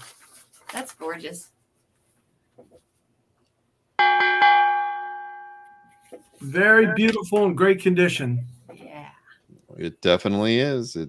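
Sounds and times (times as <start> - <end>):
boxing bell ringing: 4.0 - 7.2.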